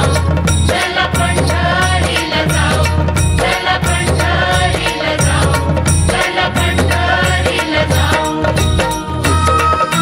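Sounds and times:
devotional song: 0:00.0 - 0:10.0
percussive beat: 0:00.0 - 0:10.0.

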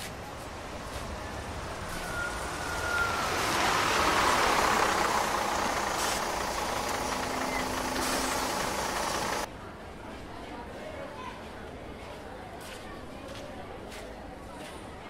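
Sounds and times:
bus passing by: 0:00.0 - 0:09.5.

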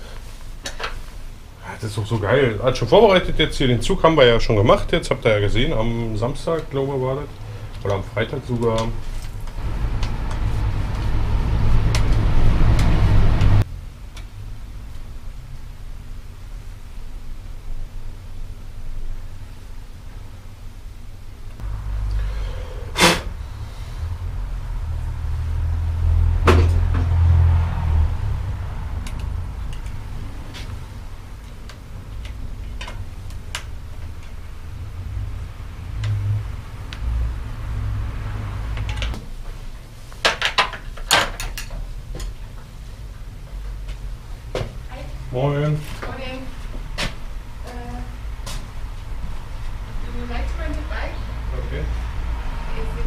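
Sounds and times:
low rumble: 0:09.5 - 0:15.4, 0:21.6 - 0:39.2.

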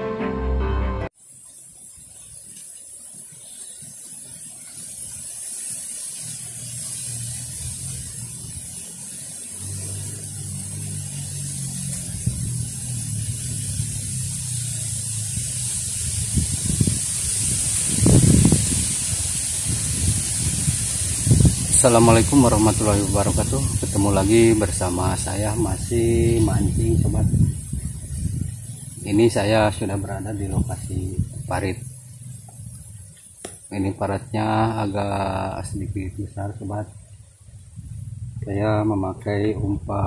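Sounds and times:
high-pitched hiss: 0:00.0 - 0:40.0
wind on microphone: 0:06.2 - 0:33.2, 0:34.2 - 0:40.0.

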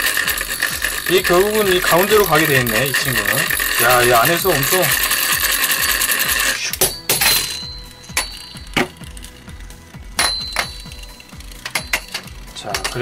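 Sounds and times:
metal spinning top grinding: 0:00.0 - 0:13.0
sharp metallic clicks with ringing: 0:00.2 - 0:09.4, 0:10.2 - 0:13.0.

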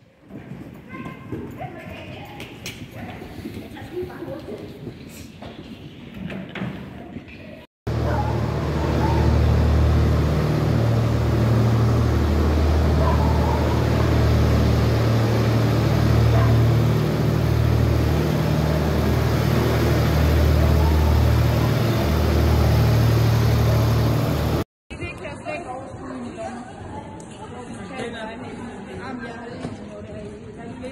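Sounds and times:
tractor engine running: 0:07.9 - 0:24.6.

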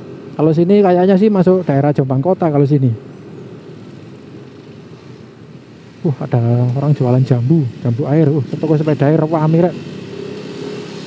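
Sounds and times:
road and wind noise: 0:00.0 - 0:11.0.

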